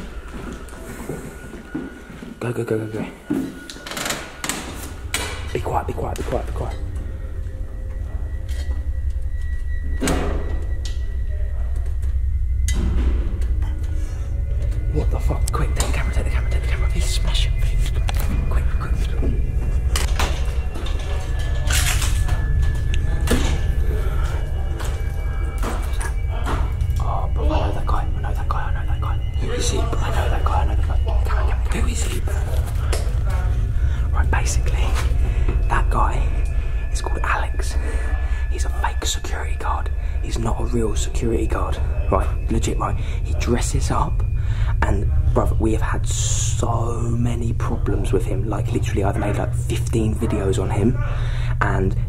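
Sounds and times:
steady low rumble: 4.4s - 52.0s.

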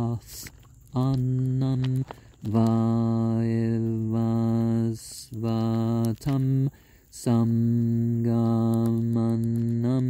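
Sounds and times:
man chanting in held tones: 0.0s - 10.0s.

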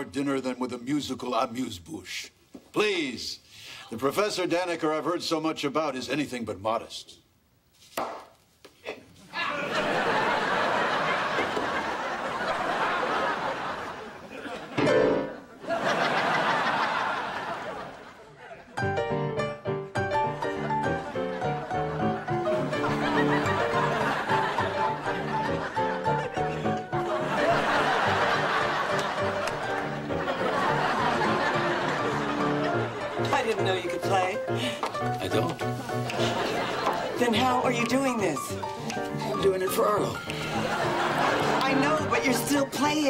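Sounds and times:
studio audience laughing: 8.9s - 18.9s, 20.5s - 33.5s, 36.1s - 38.4s, 40.3s - 42.6s
piano melody: 14.8s - 15.5s, 18.8s - 43.0s.

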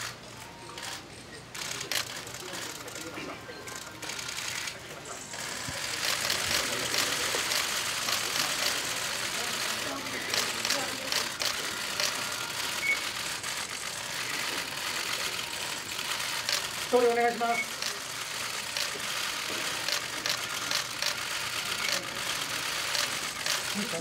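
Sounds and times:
hubbub of voices: 0.0s - 24.0s
camera shutters clicking rapidly: 0.8s - 3.1s, 3.7s - 4.8s, 5.4s - 24.0s.

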